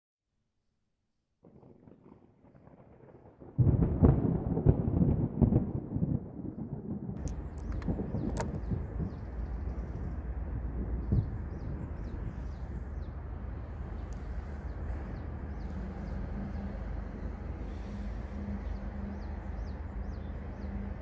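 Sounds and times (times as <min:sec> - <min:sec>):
deep thunder-like rumble: 0:01.4 - 0:21.0
sharp clicks: 0:07.2 - 0:08.8.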